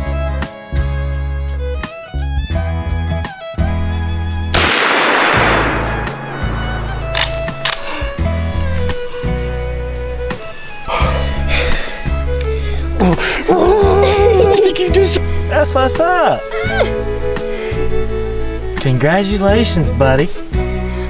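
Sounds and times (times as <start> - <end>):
bowed strings music with low beat: 0.0 - 21.0
loud gunshot with echo: 4.6 - 7.2.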